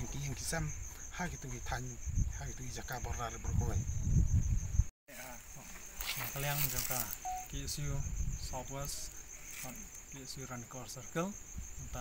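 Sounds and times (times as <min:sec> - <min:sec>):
man talking: 0:00.0 - 0:03.8, 0:05.1 - 0:12.0
high-pitched insect trill: 0:00.0 - 0:12.0.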